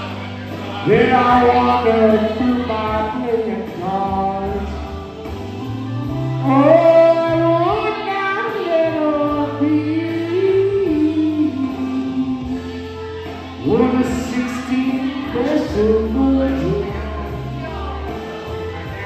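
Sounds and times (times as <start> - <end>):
backing track with bass line: 0.0 - 19.0
person singing karaoke: 0.0 - 19.0.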